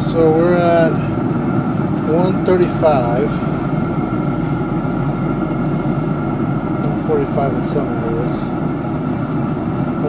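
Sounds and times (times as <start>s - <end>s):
grill fan whirring: 0.0s - 10.0s.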